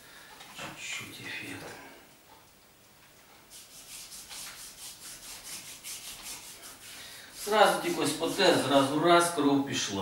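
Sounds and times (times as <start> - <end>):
hands rubbing over skin: 3.5 - 8.9.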